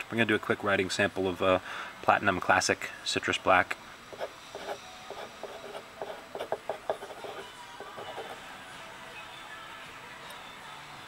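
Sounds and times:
pen nib scratching paper: 0:04.1 - 0:08.4.

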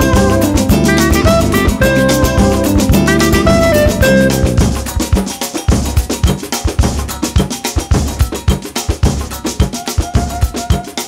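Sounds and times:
samba percussion: 0:00.0 - 0:11.0.

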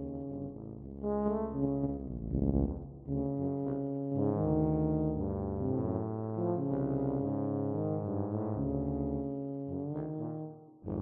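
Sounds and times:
tubas playing low notes: 0:00.1 - 0:11.0.

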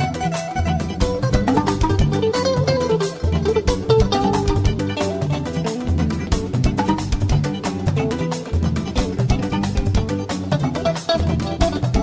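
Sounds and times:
bass line: 0:00.0 - 0:12.0
drum and percussion rhythm: 0:00.0 - 0:12.0
live band playing: 0:00.0 - 0:12.0.

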